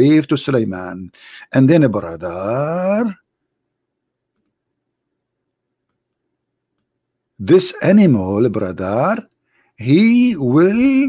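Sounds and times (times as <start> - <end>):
computer mouse clicks: 4.3 - 4.6.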